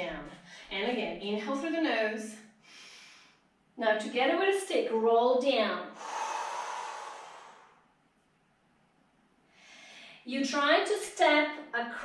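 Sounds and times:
woman exhaling: 6.0s - 7.8s.

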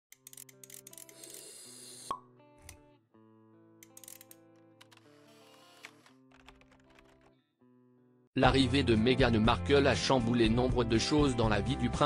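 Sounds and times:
quiet background music: 0.1s - 12.0s.

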